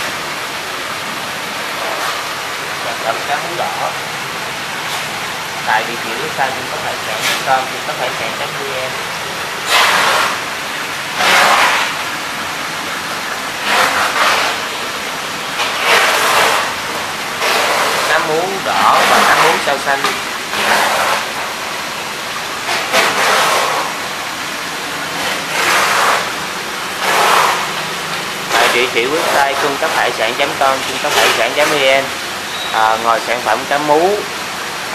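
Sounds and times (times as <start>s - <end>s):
water rushing and bubbling in tank: 0.0s - 34.9s.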